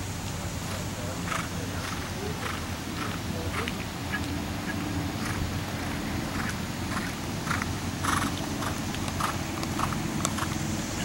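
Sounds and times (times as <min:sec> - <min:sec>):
hooves trotting on sand: 0:00.6 - 0:11.0.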